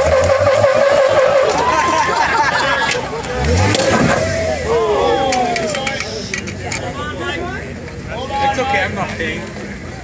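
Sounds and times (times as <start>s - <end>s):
engine revving: 0.0s - 6.6s
spectators shouting: 0.6s - 7.5s.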